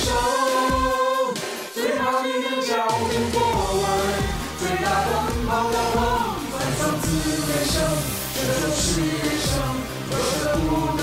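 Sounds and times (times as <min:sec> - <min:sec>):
pop backing music: 0:00.0 - 0:11.0.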